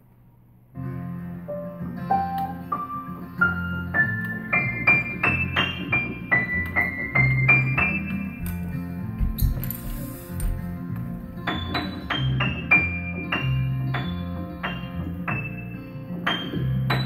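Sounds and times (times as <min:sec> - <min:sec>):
child playing piano melody: 0:01.5 - 0:10.2, 0:11.2 - 0:17.0.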